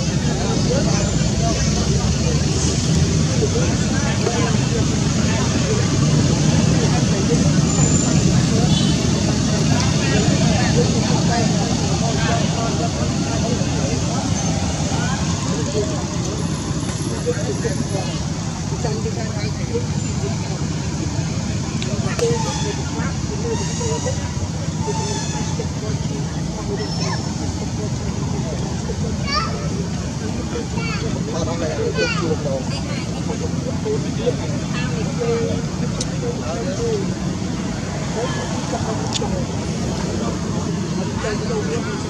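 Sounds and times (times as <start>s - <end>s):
road traffic: 0.0s - 42.0s.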